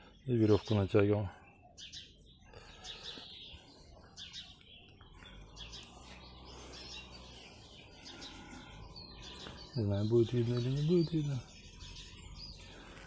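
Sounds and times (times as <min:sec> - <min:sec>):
songbirds chirping: 0:00.0 - 0:13.0.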